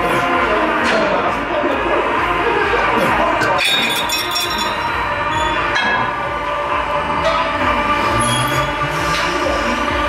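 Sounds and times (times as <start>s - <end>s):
continuous loud background noise: 0.0s - 10.0s
weight plates clinking: 3.6s - 5.0s.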